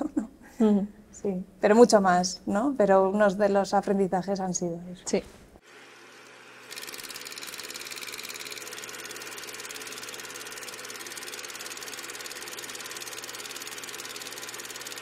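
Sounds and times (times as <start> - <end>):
film projector clatter: 6.1 - 15.0.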